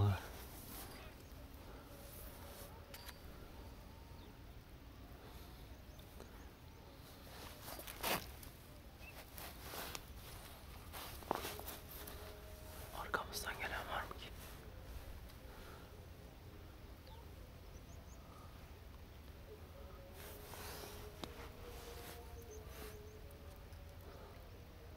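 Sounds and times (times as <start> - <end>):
low whispering: 11.4 - 17.0.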